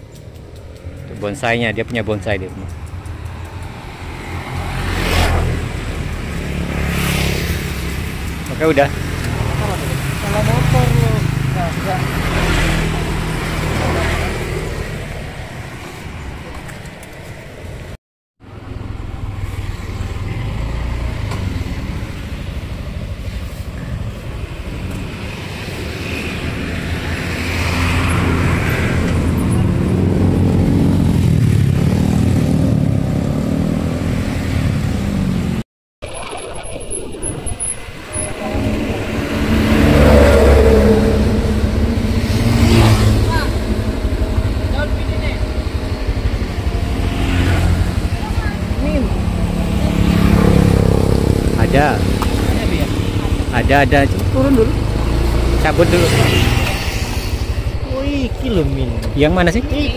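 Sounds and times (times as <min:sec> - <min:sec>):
passing traffic: 0:00.0 - 0:35.6, 0:36.2 - 0:59.9
scooter engine running: 0:38.0 - 0:59.9.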